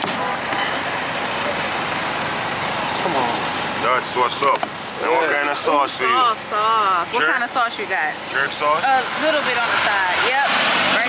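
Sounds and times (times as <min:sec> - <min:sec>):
street traffic noise: 0:00.0 - 0:11.0.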